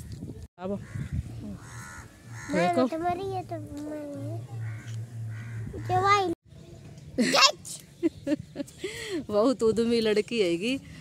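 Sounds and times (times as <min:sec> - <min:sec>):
bird calling: 0:00.8 - 0:03.2, 0:04.2 - 0:06.3.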